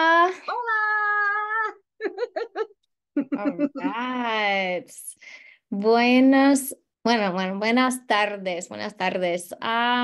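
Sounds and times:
woman laughing: 1.6s - 4.1s.

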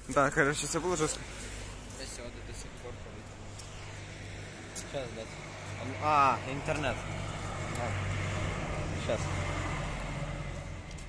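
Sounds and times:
bus engine passing: 0.6s - 11.0s.

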